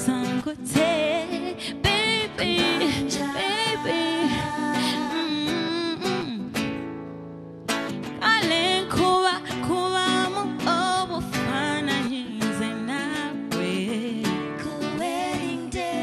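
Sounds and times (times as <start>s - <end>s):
woman singing: 0.0s - 6.8s, 8.1s - 16.0s
acoustic guitar: 0.0s - 16.0s.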